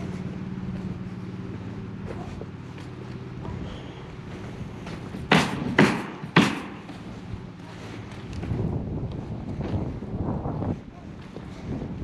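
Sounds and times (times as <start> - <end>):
low mechanical hum: 0.0 - 12.0
wind rumble on microphone: 0.0 - 12.0
hammer nailing on roof: 5.3 - 7.0.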